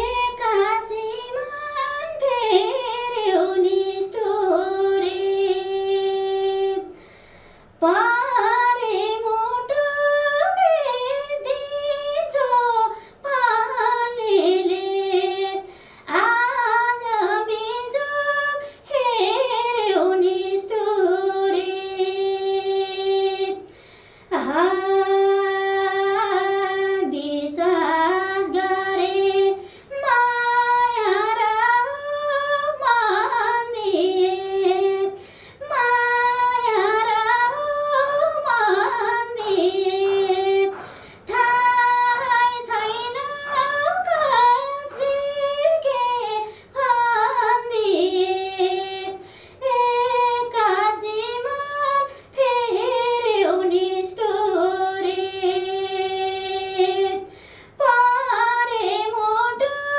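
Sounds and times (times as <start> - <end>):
woman singing unaccompanied: 0.0 - 7.0, 7.8 - 59.9
singer breathing: 7.0 - 7.8, 13.0 - 13.2, 15.6 - 16.1, 23.7 - 24.3, 29.6 - 29.9, 35.2 - 35.6, 40.7 - 41.3, 46.5 - 46.8, 49.2 - 49.6, 57.3 - 57.8.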